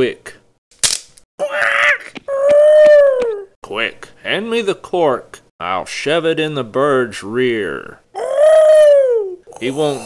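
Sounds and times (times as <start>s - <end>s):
cartoon bird wailing cry: 1.4s - 3.5s, 8.2s - 9.4s.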